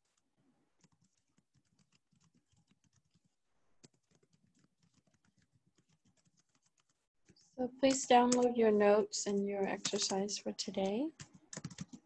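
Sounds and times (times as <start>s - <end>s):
faint keyboard typing: 0.0s - 8.6s, 9.3s - 12.0s.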